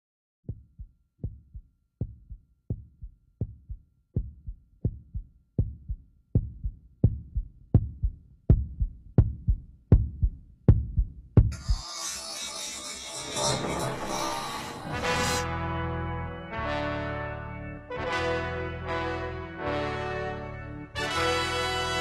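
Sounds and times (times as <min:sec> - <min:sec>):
heartbeat thumps: 0:00.4 - 0:11.7.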